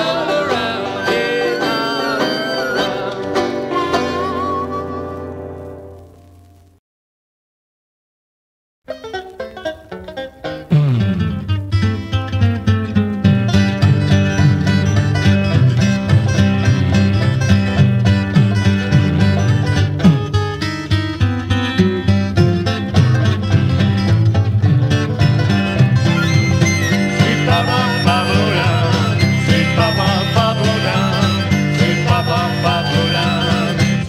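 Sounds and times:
banjo and guitar picking: 0:00.0 - 0:05.8, 0:08.9 - 0:34.0
low bass notes: 0:10.7 - 0:34.0.

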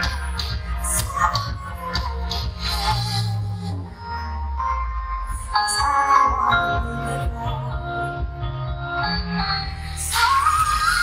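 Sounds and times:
backing track with bass: 0:00.0 - 0:11.0.

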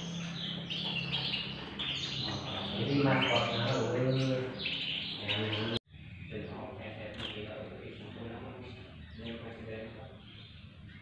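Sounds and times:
canaries singing: 0:00.0 - 0:11.0.

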